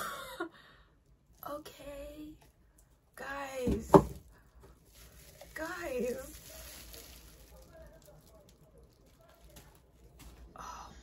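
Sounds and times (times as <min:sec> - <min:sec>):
bubble wrap crinkling: 0:04.1 - 0:10.6.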